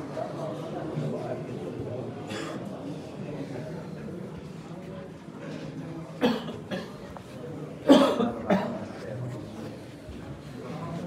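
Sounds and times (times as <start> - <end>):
murmur of voices: 0.0 - 11.0
person coughing: 6.2 - 7.0, 7.9 - 8.8.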